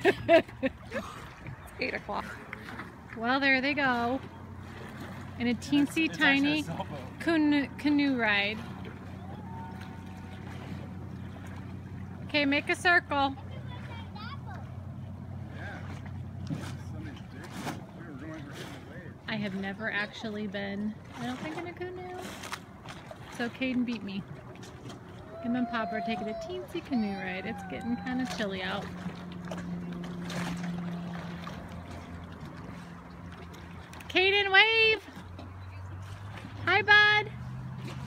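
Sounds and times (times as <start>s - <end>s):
lake water lapping: 0.0s - 38.0s
low steady hum: 0.0s - 38.0s
faint voices: 25.1s - 28.9s.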